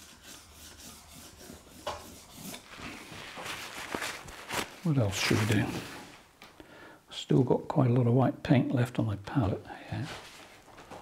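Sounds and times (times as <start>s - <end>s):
paintbrush scrubbing strokes: 0.0s - 6.3s.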